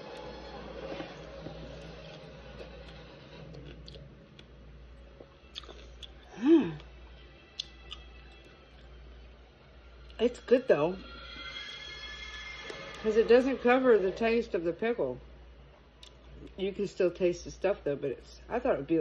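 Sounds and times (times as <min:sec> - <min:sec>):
person chewing: 0:00.0 - 0:06.9, 0:07.5 - 0:08.9.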